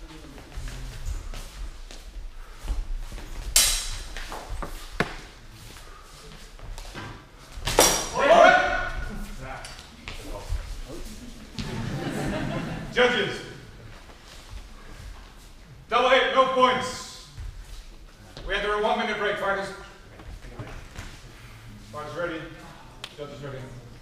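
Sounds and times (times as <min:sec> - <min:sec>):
footfalls on echoing floor: 0:00.0 - 0:12.8, 0:13.6 - 0:15.9, 0:17.2 - 0:18.9, 0:20.0 - 0:21.4
steel swords clashing: 0:07.8 - 0:08.5
man shouting: 0:08.1 - 0:09.1.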